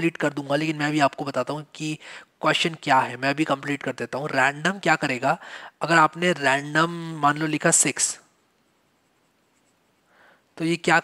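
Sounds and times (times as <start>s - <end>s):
stylus scratching on pen tablet: 8.6s - 10.1s.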